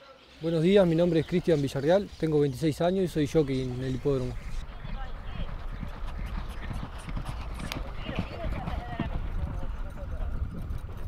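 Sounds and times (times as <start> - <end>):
hooves thudding on sand: 3.4 - 11.0.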